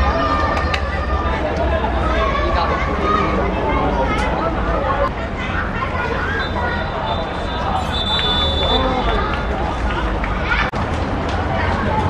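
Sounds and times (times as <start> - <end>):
players calling and talking: 0.0 - 12.0.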